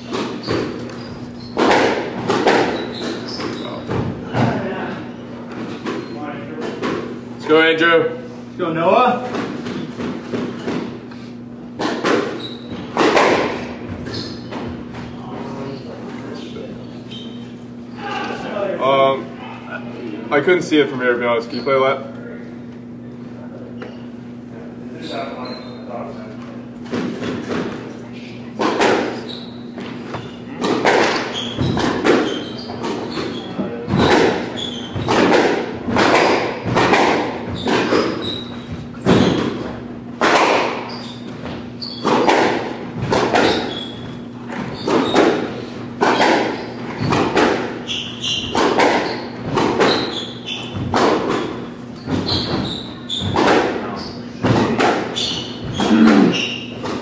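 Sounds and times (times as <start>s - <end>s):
squash ball hitting racquets and walls: 0.0s - 8.0s, 8.7s - 15.8s, 25.0s - 57.0s.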